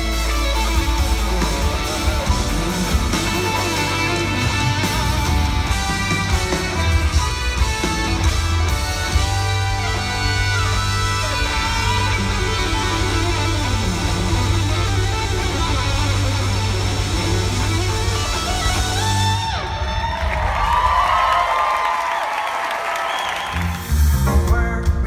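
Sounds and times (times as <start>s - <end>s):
electric guitar lead lines: 0.0s - 20.6s
live band playing: 0.0s - 21.1s, 23.3s - 25.0s.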